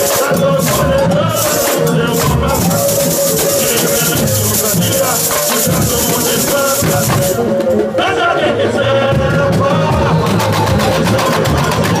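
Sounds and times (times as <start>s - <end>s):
snare drums and shakers rattling: 0.0s - 7.8s, 9.8s - 12.0s
bass drums beating: 9.1s - 12.0s.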